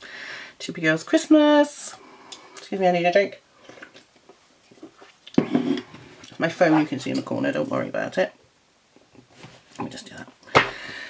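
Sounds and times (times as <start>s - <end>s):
small faint noises: 0.0s - 11.0s.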